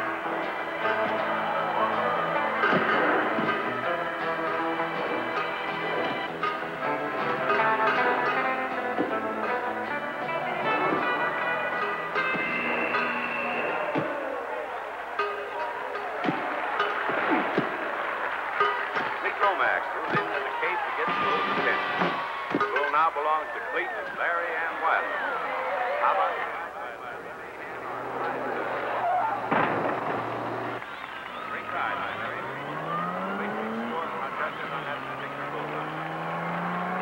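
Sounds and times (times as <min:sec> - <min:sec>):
crowd shouting and yelling: 0:00.0 - 0:37.0
film music with held notes: 0:00.0 - 0:37.0
thumps: 0:02.6 - 0:06.6, 0:10.6 - 0:14.6, 0:15.2 - 0:18.0, 0:20.0 - 0:23.0, 0:28.2 - 0:30.9.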